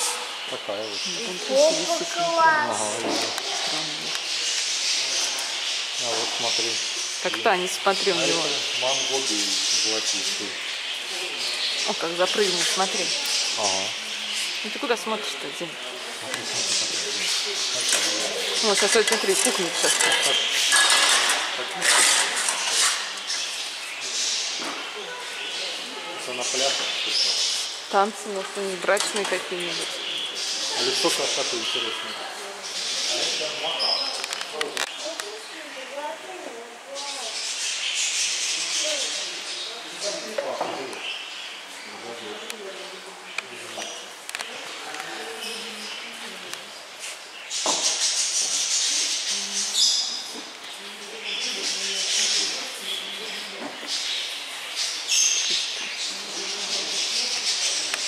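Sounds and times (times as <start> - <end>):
people talking indistinctly: 0.0 - 37.6.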